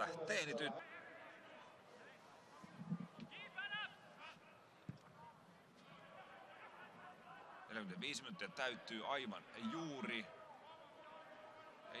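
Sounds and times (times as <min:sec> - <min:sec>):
faint stadium ambience: 0:00.0 - 0:12.0.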